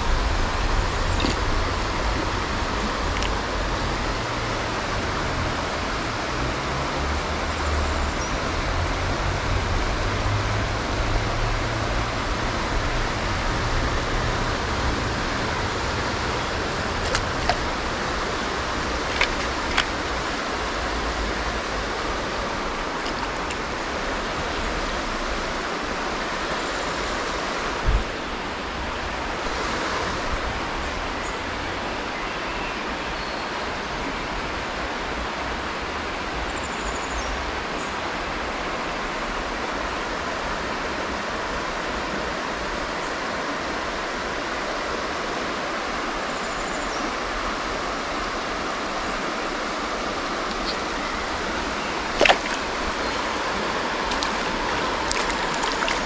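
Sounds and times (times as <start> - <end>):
river water rushing: 0.0 - 56.0.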